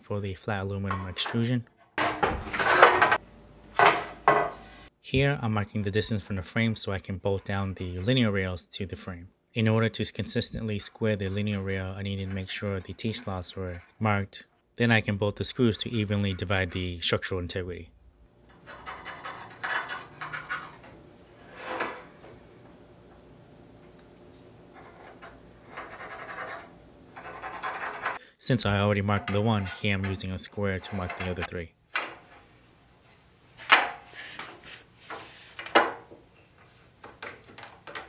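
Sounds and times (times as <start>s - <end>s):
metal panels scraping and clattering: 1.9s - 3.2s, 18.5s - 22.6s, 24.6s - 28.2s
long scrape: 21.4s - 22.2s
pen scratching: 25.7s - 28.2s.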